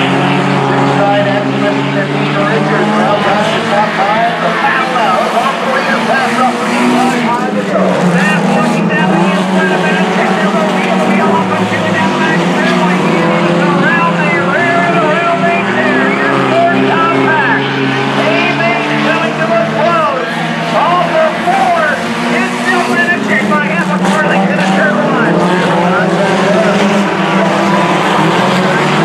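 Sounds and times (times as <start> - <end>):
people's voices: 0.0 - 29.0
race car engines running hard: 0.0 - 29.0.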